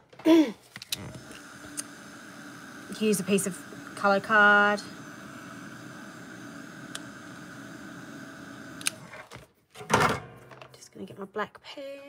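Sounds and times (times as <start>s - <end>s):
hair dryer blowing: 0.9s - 9.1s.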